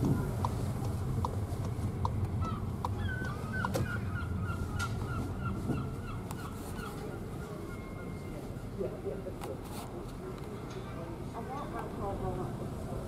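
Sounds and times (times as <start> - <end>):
car engine rumble: 0.0 - 7.4
road noise: 0.0 - 13.0.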